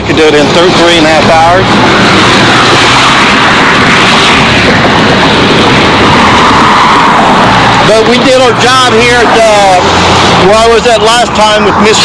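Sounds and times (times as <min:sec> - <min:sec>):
road traffic: 0:00.0 - 0:12.0
wind buffeting microphone: 0:00.0 - 0:12.0.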